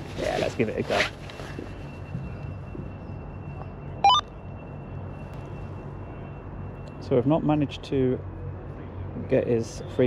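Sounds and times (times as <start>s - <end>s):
rising electronic beeps: 4.0s - 4.3s.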